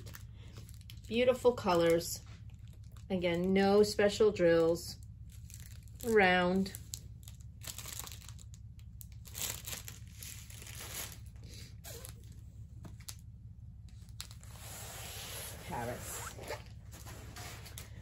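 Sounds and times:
plastic crinkling and rustling: 0:00.0 - 0:03.6, 0:04.7 - 0:18.0.

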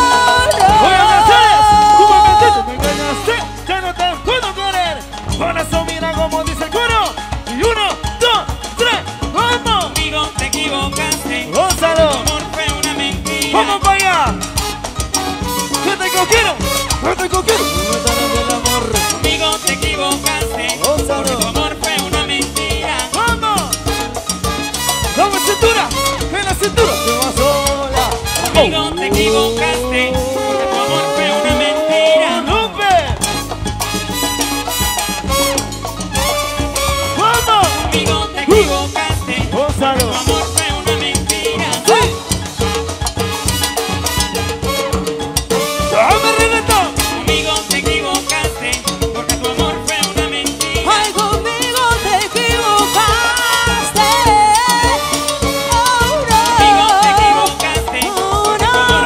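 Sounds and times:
drum kit: 0:00.0 - 0:21.7, 0:23.6 - 0:44.8, 0:52.4 - 0:59.0
keyboard: 0:00.0 - 0:59.0
salsa band playing: 0:00.0 - 0:59.0.

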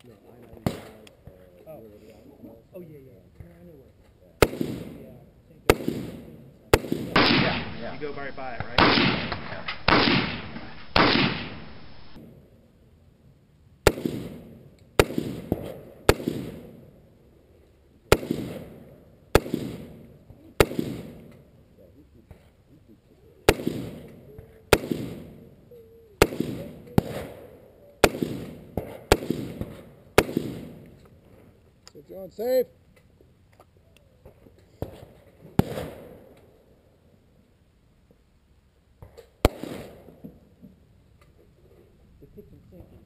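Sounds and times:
rifle shots with echo: 0:00.6 - 0:01.0, 0:04.4 - 0:12.4, 0:13.8 - 0:17.0, 0:18.1 - 0:21.5, 0:23.5 - 0:25.6, 0:26.2 - 0:31.0, 0:34.8 - 0:36.4, 0:39.4 - 0:40.2.

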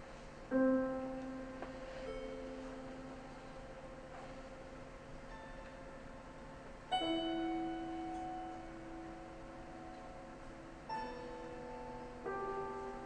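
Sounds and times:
piano notes and chords: 0:00.0 - 0:13.0.

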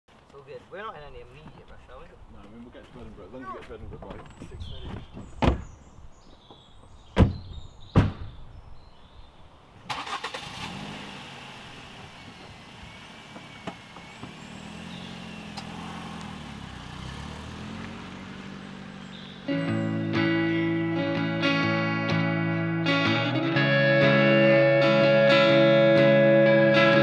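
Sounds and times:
car doors slamming: 0:04.1 - 0:05.8, 0:07.1 - 0:08.5
car engine starting and running: 0:09.8 - 0:21.8
guitar music: 0:19.2 - 0:27.0.

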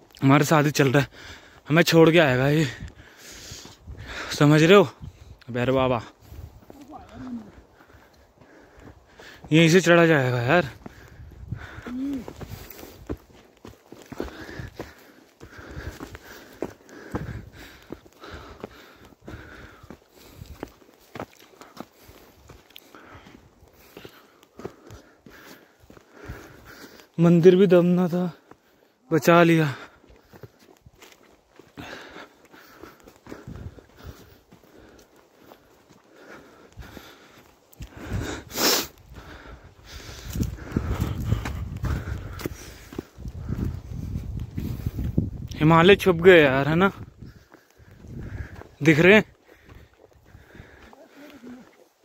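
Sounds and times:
footsteps on stony path: 0:00.0 - 0:52.0
person breathing hard: 0:01.1 - 0:01.7, 0:02.7 - 0:04.4, 0:06.1 - 0:09.5, 0:10.7 - 0:27.2, 0:29.7 - 0:45.3, 0:47.0 - 0:52.0.

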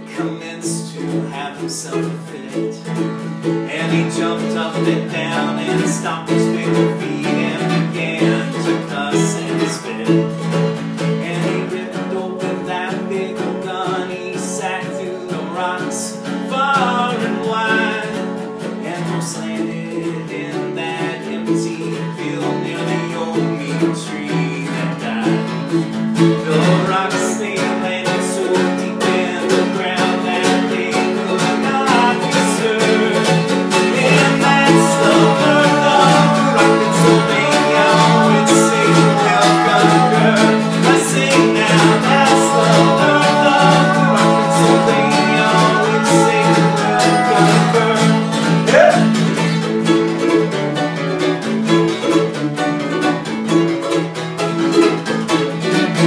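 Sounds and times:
acoustic guitar strumming: 0:00.0 - 0:56.0
mandolin picking a melody: 0:00.0 - 0:56.0.

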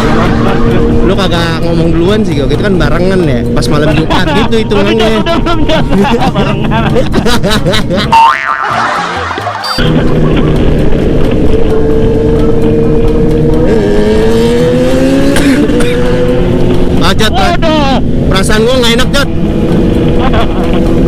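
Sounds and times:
motorcycle engine accelerating: 0:00.0 - 0:21.0
boing sound effect: 0:08.0 - 0:10.4.

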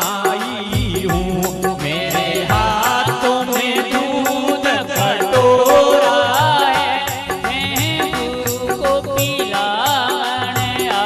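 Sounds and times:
high rattling percussion rhythm: 0:00.0 - 0:11.0
man singing into a microphone: 0:00.0 - 0:11.0.

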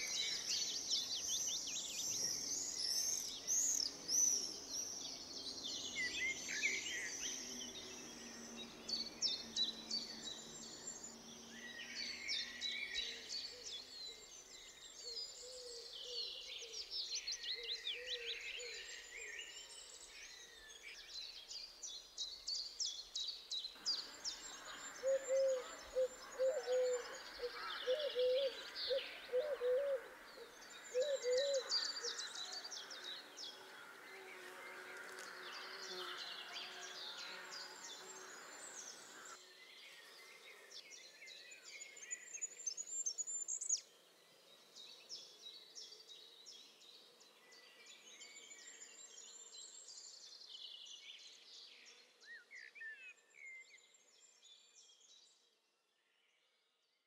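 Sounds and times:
birds chirping and trilling: 0:00.0 - 0:55.4.

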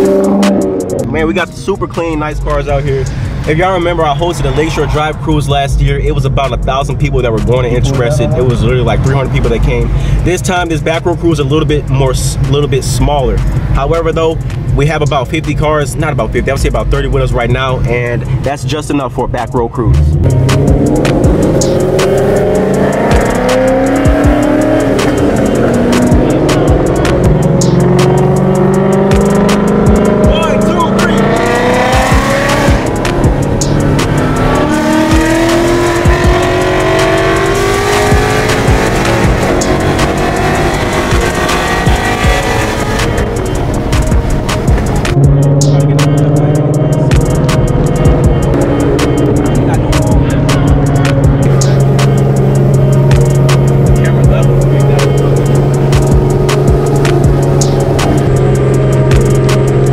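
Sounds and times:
background music with beat: 0:00.0 - 0:59.9
car engines accelerating: 0:00.0 - 0:59.9.

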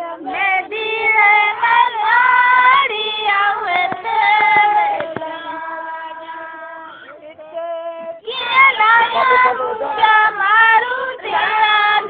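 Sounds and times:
women singing folk song: 0:00.0 - 0:12.0.

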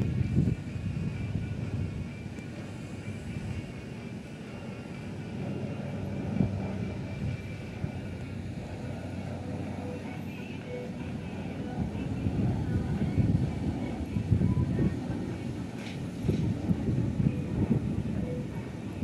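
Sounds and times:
propeller airplane droning overhead: 0:00.0 - 0:19.0.

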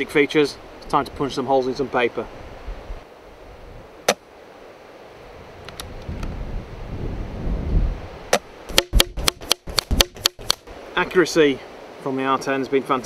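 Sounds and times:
wind rumble on microphone: 0:05.3 - 0:08.3
sharp clicks: 0:08.7 - 0:10.7.

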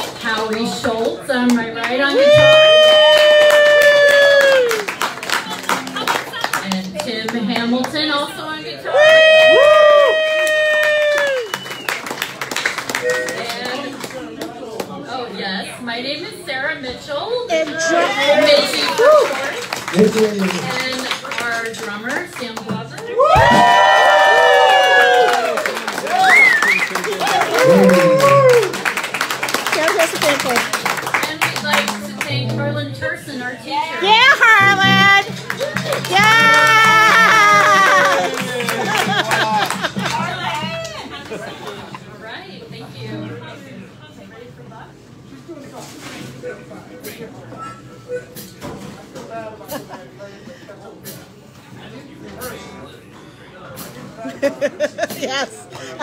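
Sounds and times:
indistinct crowd talk: 0:00.0 - 0:56.0
people talking: 0:29.8 - 0:48.3.

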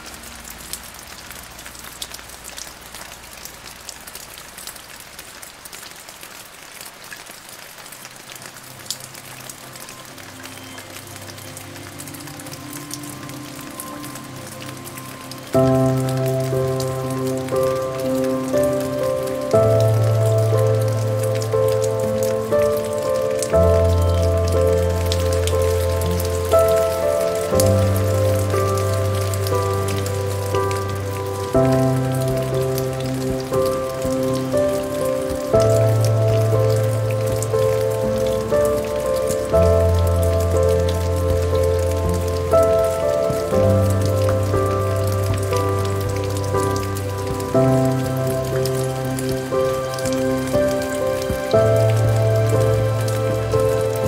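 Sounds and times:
soft relaxation music: 0:00.0 - 0:05.5, 0:06.6 - 0:54.0
rain pattering: 0:00.0 - 0:54.0.

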